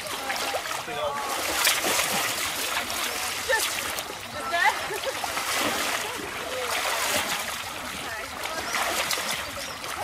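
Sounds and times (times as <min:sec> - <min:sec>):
people wading through water: 0:00.0 - 0:10.0
short splashes: 0:00.0 - 0:10.0.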